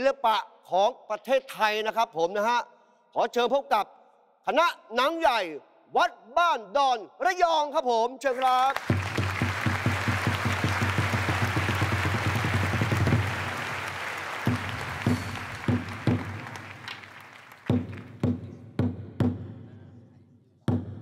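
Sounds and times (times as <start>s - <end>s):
audience applauding: 8.4s - 18.2s
barrel drum beats: 8.8s - 19.7s.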